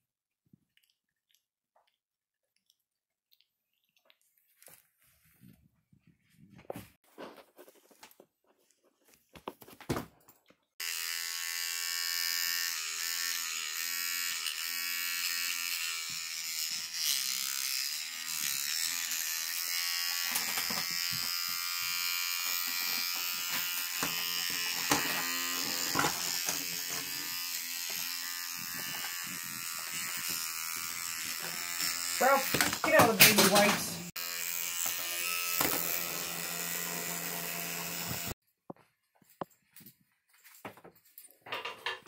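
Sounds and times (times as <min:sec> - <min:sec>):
electric toothbrush buzzing: 0:10.8 - 0:38.4.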